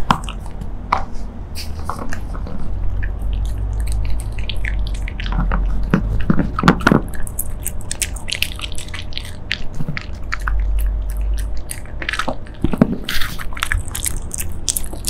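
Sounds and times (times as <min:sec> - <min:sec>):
teeth clicking: 0:00.0 - 0:01.1, 0:01.9 - 0:15.0
dog chewing treats: 0:00.0 - 0:15.0.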